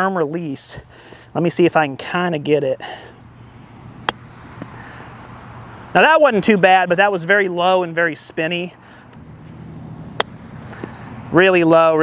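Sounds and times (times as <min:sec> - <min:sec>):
golf club striking ball: 0:04.0 - 0:04.8, 0:09.2 - 0:11.0.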